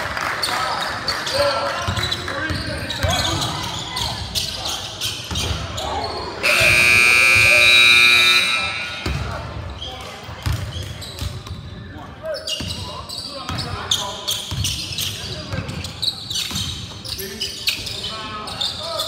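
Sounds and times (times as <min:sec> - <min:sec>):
crowd voices echoing: 0:05.6 - 0:10.4
scoreboard buzzer: 0:06.4 - 0:09.3.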